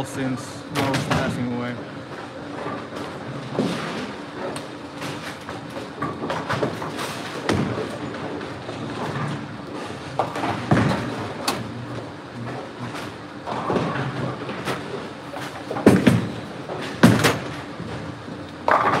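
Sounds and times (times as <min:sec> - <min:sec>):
bowling balls rolling on lanes: 0:00.0 - 0:19.0
balls and pins clattering: 0:02.5 - 0:11.6, 0:12.4 - 0:19.0.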